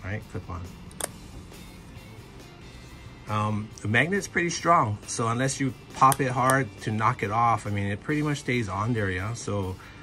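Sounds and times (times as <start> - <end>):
quiet background music: 0.0 - 10.0
magnetic filter snapping on: 0.8 - 1.6.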